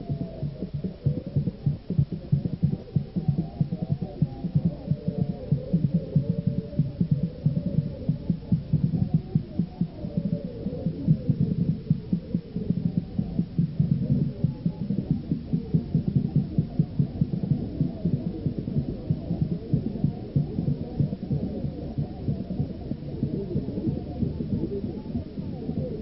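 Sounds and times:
fast low drumming: 0:00.0 - 0:26.0.

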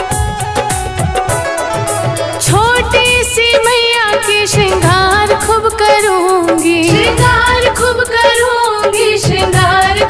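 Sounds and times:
percussion beat: 0:00.0 - 0:10.0
devotional singing: 0:02.4 - 0:10.0.

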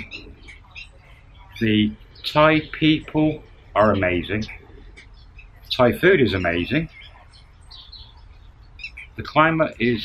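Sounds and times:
small birds chirping: 0:00.0 - 0:10.0
steady low hum: 0:00.0 - 0:10.0.

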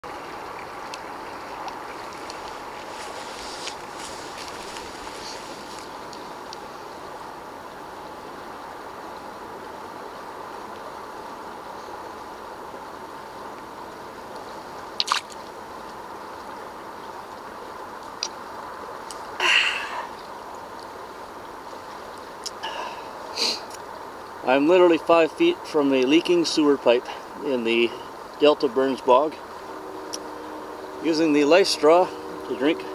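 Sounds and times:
steady hiss: 0:01.2 - 0:32.9.

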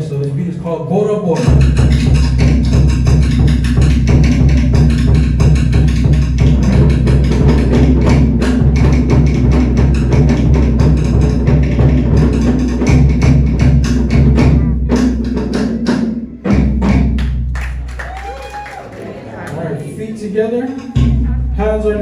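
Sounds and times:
wooden slit drums and skin drums: 0:01.2 - 0:18.0, 0:20.6 - 0:22.0.

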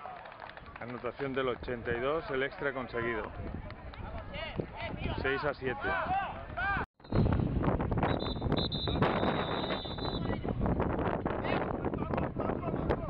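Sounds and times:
wind buffeting microphone: 0:00.6 - 0:13.0.

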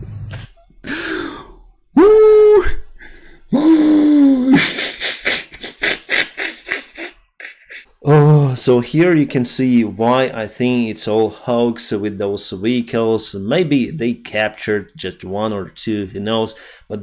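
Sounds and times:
breathy muffled laughter: 0:04.3 - 0:07.9.

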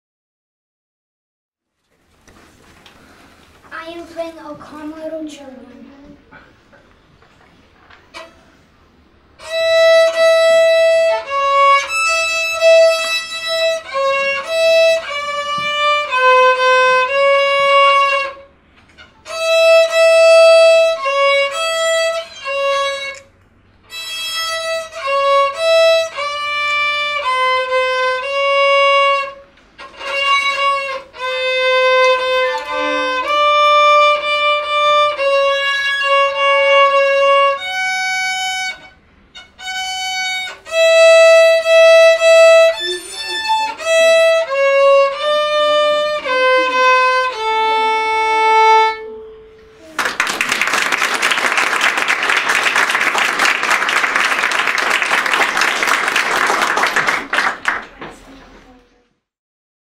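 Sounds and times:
solo violin melody: 0:09.3 - 0:49.9.

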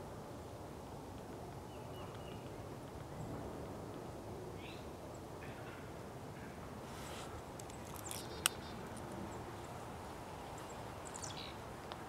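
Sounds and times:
low outdoor background: 0:00.0 - 0:12.0.

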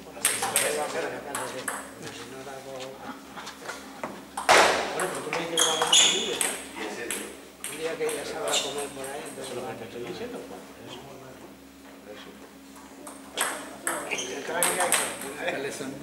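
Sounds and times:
table tennis ball clicking: 0:13.1 - 0:15.3.

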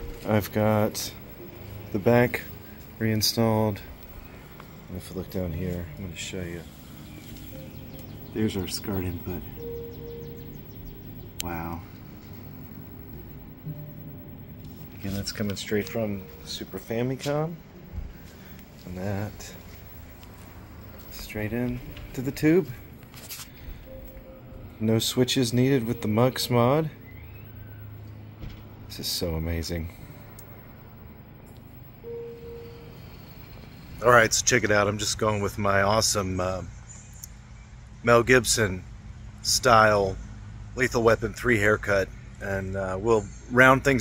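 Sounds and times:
faint video game music: 0:00.0 - 0:28.0, 0:31.7 - 0:35.2
steady tone: 0:00.0 - 0:35.0
low rumble of distant motors: 0:00.0 - 0:44.0.

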